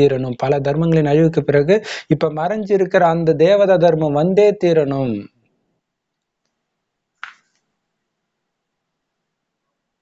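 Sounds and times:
man's voice: 0.0 - 5.4.

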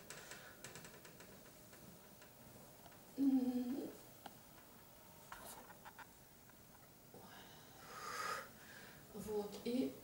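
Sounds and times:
soft rustle: 1.2 - 6.9.

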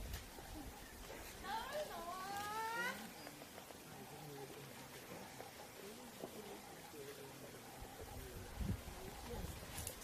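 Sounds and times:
faint background sounds: 0.0 - 10.0.

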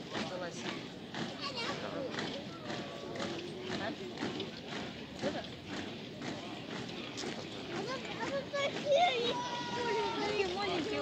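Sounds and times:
people's voices: 0.0 - 11.0.

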